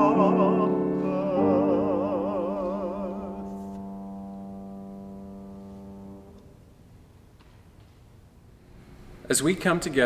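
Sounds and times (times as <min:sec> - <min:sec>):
piano chord: 0:00.0 - 0:06.8.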